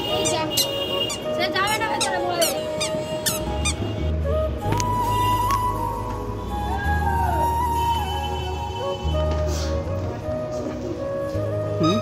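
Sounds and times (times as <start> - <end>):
background music with held tones: 0.0 - 12.0
short high squeaks: 0.2 - 3.8
deep bass: 3.3 - 10.4.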